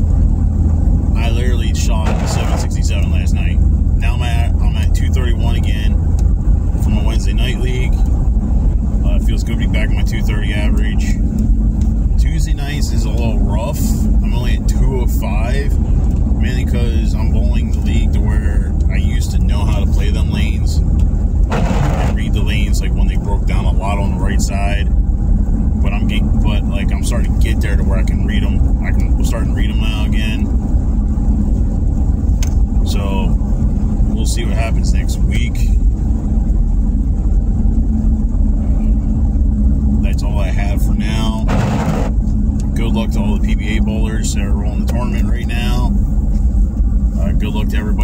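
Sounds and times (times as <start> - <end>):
car road and engine noise: 0.0 - 48.0
man talking: 1.1 - 6.0, 6.8 - 8.0, 9.0 - 11.3, 12.2 - 15.8, 16.4 - 20.8, 22.0 - 24.9, 25.8 - 30.5, 32.8 - 33.4, 34.1 - 35.8, 40.0 - 41.6, 42.7 - 46.0, 47.1 - 48.0.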